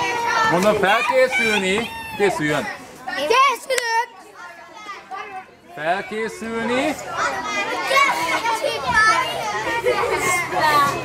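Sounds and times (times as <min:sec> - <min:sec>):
children chattering: 0:00.0 - 0:11.0
children shouting excitedly: 0:00.0 - 0:11.0.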